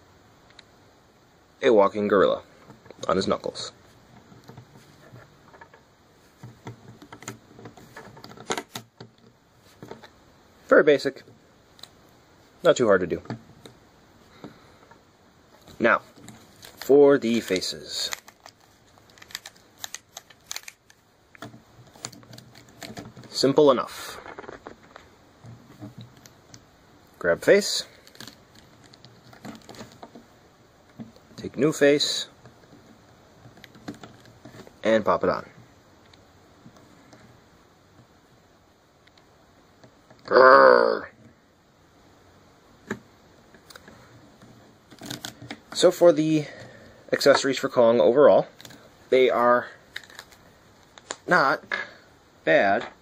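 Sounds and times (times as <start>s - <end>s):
plastic toy clicks and rustles: 16.2s - 23.4s, 44.9s - 45.6s.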